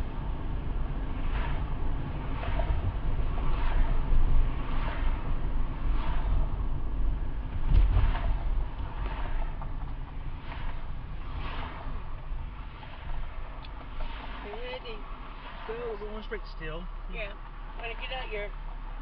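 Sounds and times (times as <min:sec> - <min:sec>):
road and tyre rumble: 0:00.0 - 0:19.0.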